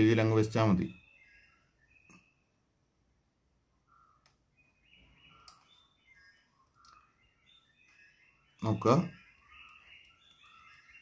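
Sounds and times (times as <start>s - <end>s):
faint high chirps: 0.0s - 2.8s, 3.6s - 11.0s
soft clicks: 4.1s - 4.5s, 5.4s - 7.2s.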